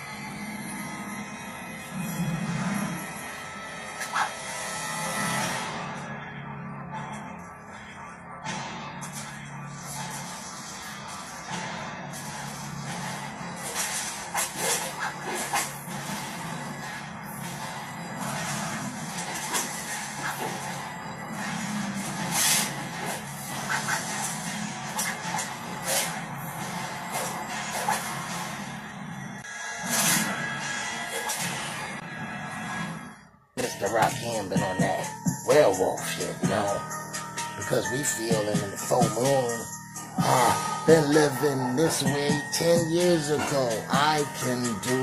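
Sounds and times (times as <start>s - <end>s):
film soundtrack music: 0.0s - 45.0s.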